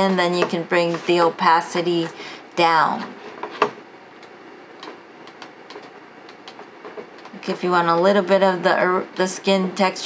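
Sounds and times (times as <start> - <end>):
computer clicks: 4.2 - 7.4.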